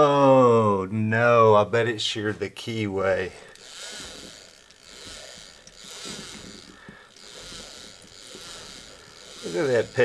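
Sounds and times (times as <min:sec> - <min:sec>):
gears meshing: 0:03.4 - 0:10.0.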